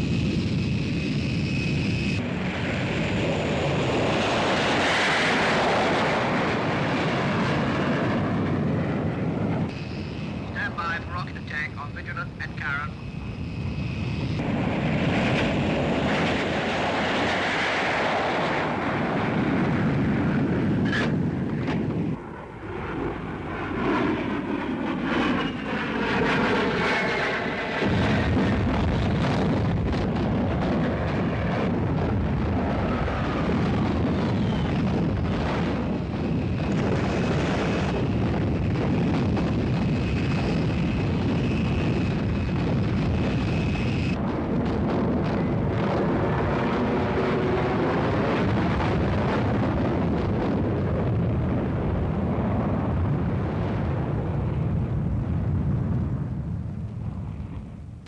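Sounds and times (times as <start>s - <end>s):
jet engine noise: 0.0s - 58.0s
jet passing by in falling whine: 0.0s - 58.0s.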